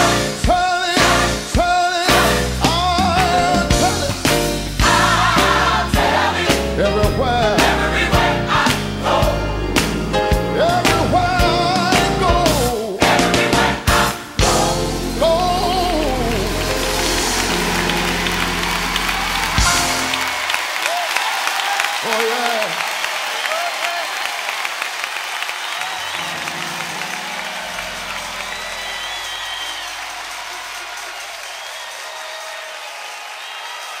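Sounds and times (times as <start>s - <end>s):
band playing final chord: 6.9s - 20.4s
audience calling out: 7.5s - 34.0s
audience applauding: 7.6s - 34.0s.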